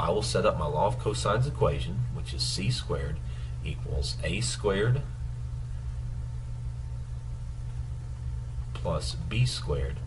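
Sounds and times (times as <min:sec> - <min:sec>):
man speaking: 0:00.0 - 0:05.2, 0:08.7 - 0:10.0
low background hum: 0:00.0 - 0:10.0.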